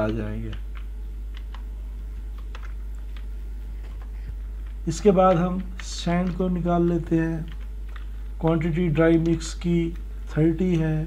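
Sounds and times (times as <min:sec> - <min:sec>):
keyboard keys clicking: 0:00.0 - 0:11.0
steady low hum: 0:00.0 - 0:11.0.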